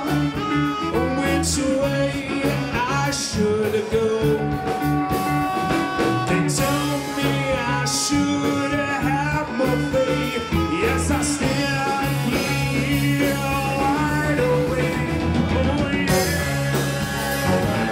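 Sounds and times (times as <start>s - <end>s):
alto saxophone: 0.0s - 17.9s
live band playing: 0.0s - 17.9s
person singing: 0.0s - 17.9s
repeating bass line: 0.0s - 17.9s.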